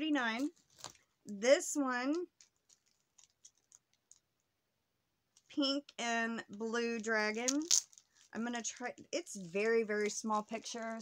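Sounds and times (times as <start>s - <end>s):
plastic packaging crinkling: 0.3s - 1.2s, 2.0s - 4.4s, 6.7s - 11.0s
person speaking: 1.2s - 2.4s, 5.5s - 11.0s.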